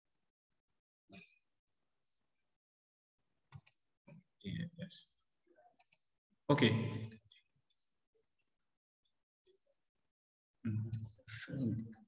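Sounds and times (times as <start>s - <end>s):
computer mouse clicks: 3.5s - 3.8s, 5.8s - 6.1s.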